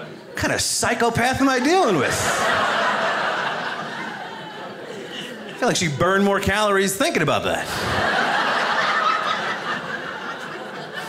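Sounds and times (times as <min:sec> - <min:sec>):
audience laughing: 0:01.2 - 0:06.0, 0:07.5 - 0:11.0.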